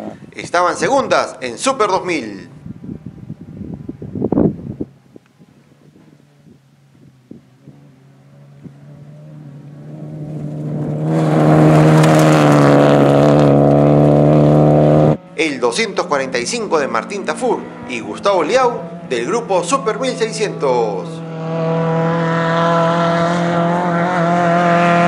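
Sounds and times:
rally car engine at high revs: 0:05.8 - 0:25.0.

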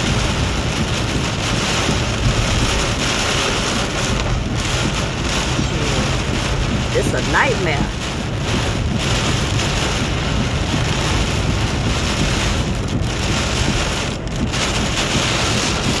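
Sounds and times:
heavy rain on car roof: 0:00.0 - 0:16.0.

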